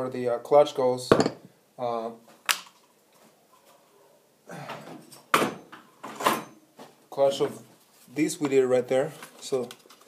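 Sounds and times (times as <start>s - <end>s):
metal parts knocking on bench: 1.1s - 1.4s.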